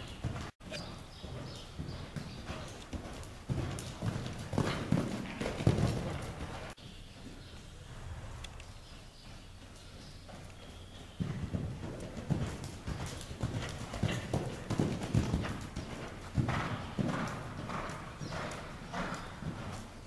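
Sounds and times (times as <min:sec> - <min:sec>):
horse hoofbeats on sand: 0:00.0 - 0:08.1, 0:08.7 - 0:20.0.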